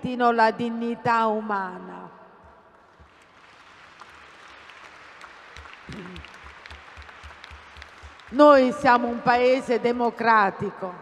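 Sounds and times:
audience applauding: 2.8 - 8.6.

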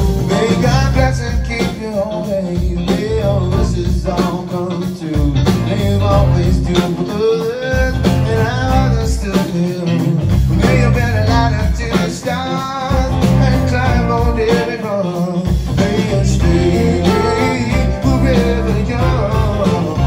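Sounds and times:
electric guitar lead bending notes: 0.0 - 20.0
live blues-rock band: 0.0 - 20.0.

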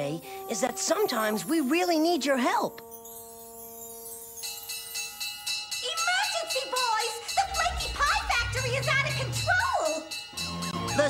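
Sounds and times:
held musical chord: 0.0 - 11.0
alarm bell ringing rapidly: 2.8 - 11.0.

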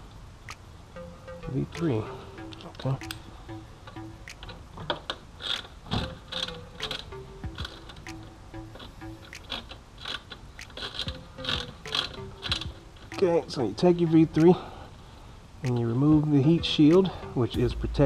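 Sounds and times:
faint background music: 0.0 - 18.0.

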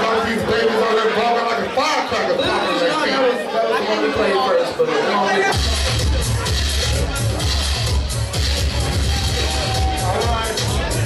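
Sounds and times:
man talking through a microphone: 0.0 - 7.6, 9.1 - 11.0
crowd chatter: 0.0 - 11.0.

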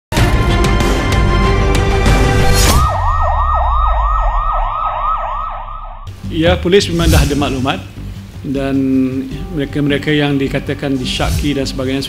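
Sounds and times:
music: 0.1 - 3.5, 6.1 - 12.0
electronic siren yelping: 2.6 - 6.1
low rumble: 2.8 - 6.2.

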